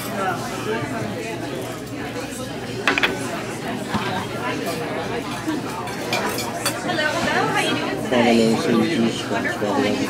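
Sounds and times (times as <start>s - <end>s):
murmur of diners talking: 0.0s - 10.0s.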